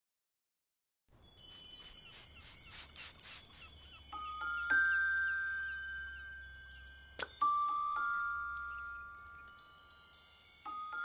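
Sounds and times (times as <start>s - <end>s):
high tinkling chime tones: 1.1s - 11.0s.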